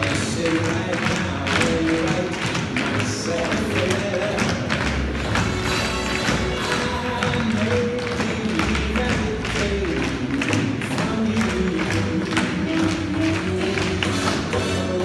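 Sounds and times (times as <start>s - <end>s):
music playing: 0.0s - 15.0s
tap shoes on stage floor: 0.0s - 15.0s.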